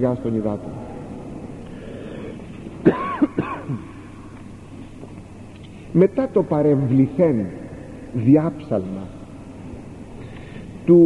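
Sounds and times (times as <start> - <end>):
man clearing his throat: 2.8 - 4.0.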